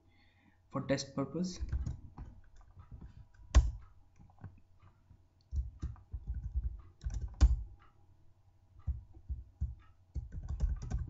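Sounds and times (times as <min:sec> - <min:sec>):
keyboard typing: 0:01.6 - 0:08.0, 0:08.8 - 0:11.0.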